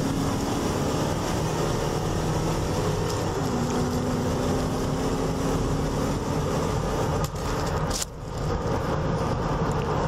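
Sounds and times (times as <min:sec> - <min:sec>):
car engine and road noise: 0:00.0 - 0:10.0.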